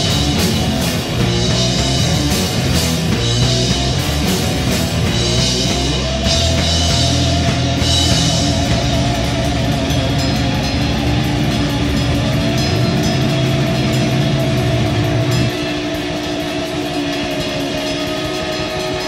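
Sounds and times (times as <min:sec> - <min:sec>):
droning held tones: 0:00.0 - 0:19.0
noise-rock band playing: 0:00.0 - 0:19.0.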